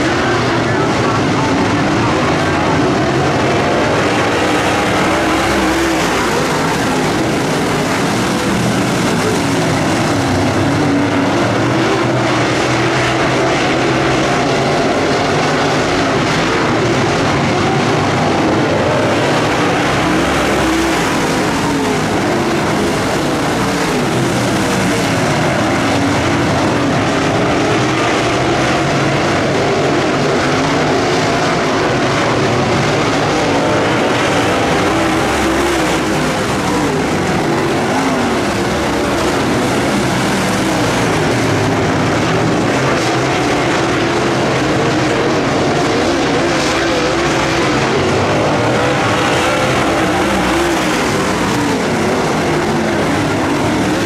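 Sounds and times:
race car engines roaring: 0.0 - 54.0.

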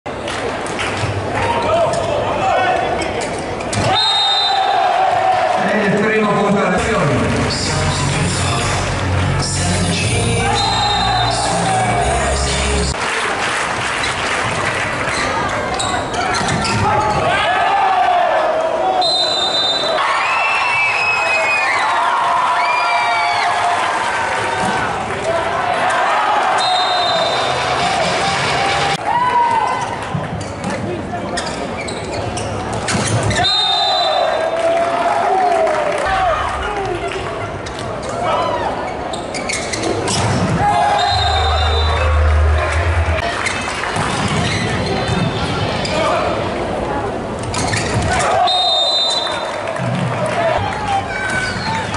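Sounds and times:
shoes squeaking on court: 15.1 - 17.2, 29.8 - 33.4, 38.9 - 41.9, 43.4 - 46.0, 47.4 - 48.2, 51.3 - 51.9.

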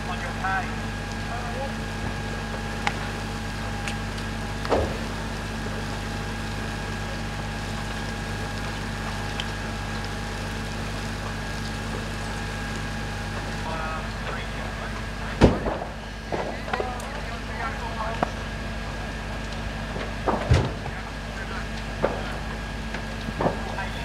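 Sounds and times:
fire engine pumps droning: 0.0 - 24.0.

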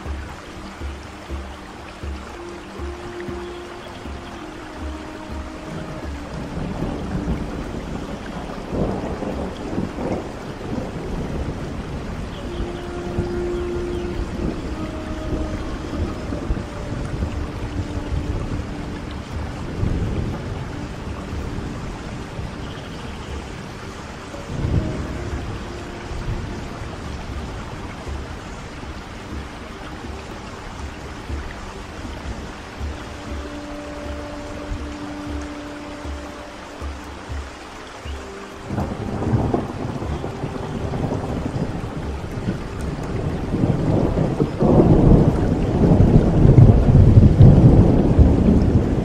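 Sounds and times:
soft flute music: 0.0 - 49.0
steady rain: 0.0 - 49.0
low rolls of thunder: 5.6 - 23.8, 38.7 - 49.0.

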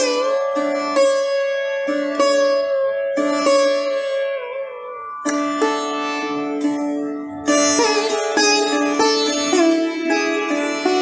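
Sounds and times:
sitar playing: 0.0 - 11.0.

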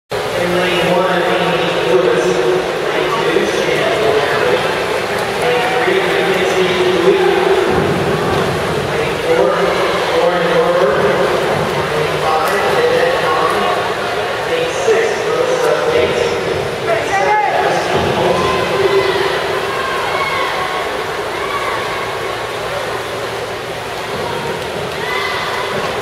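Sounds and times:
crowd shouting and cheering: 3.0 - 14.5, 15.9 - 26.0.

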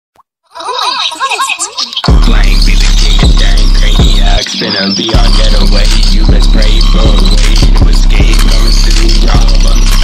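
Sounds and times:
pitch-swept voice sample: 0.5 - 10.0.

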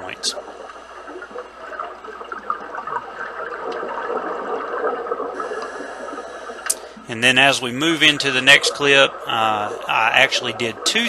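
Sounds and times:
underwater bubbling hiss: 0.2 - 7.0.

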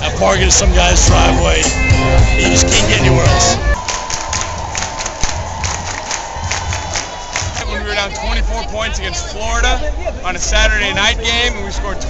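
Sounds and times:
football crowd cheering and shouting: 0.0 - 12.0.

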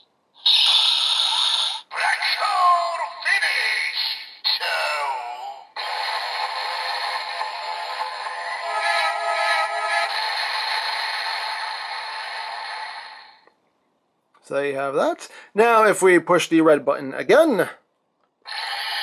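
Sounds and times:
recorded voice from toy speaker: 0.4 - 11.4, 18.5 - 19.0
electronic effect with music: 5.8 - 13.4.

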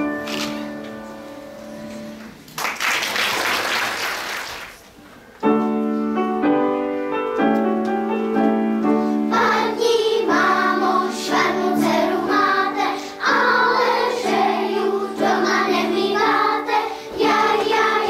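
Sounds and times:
piano accompaniment: 0.0 - 2.5, 5.2 - 18.0
children's choir singing: 9.1 - 18.0.

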